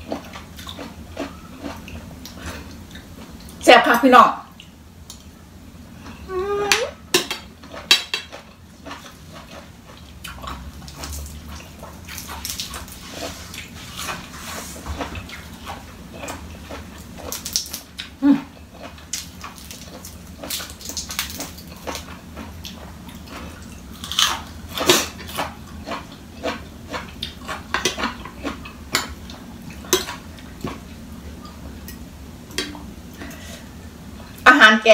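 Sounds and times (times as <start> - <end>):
person chewing crisp food: 0.0 - 3.6, 7.5 - 31.9.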